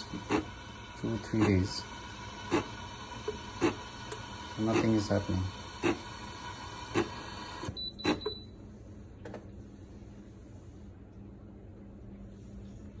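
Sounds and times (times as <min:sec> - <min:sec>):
espresso machine hissing: 0:00.0 - 0:07.7
faint low hum: 0:07.8 - 0:13.0.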